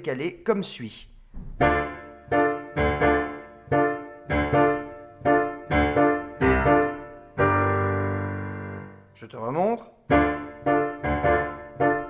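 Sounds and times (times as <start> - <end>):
digital piano chords: 1.4 - 9.2, 10.0 - 12.0.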